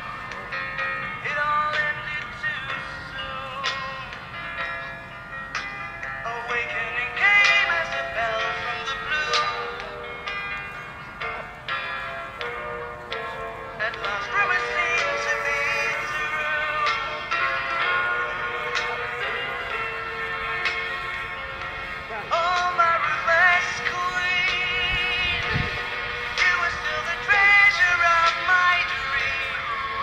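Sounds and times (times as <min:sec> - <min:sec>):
song with wavering vocal: 0:00.0 - 0:04.4, 0:05.5 - 0:10.4, 0:13.0 - 0:30.0.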